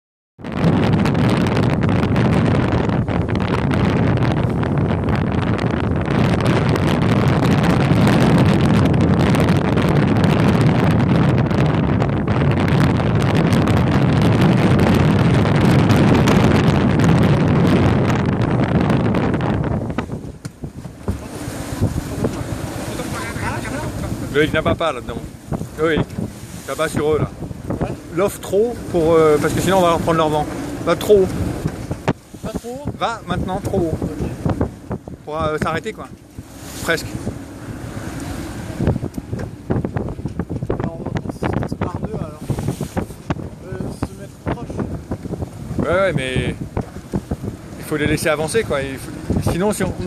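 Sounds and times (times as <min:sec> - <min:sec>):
strong wind buffeting microphone: 0:00.4 - 0:50.0
water noise: 0:00.4 - 0:50.0
voices: 0:22.9 - 0:26.1.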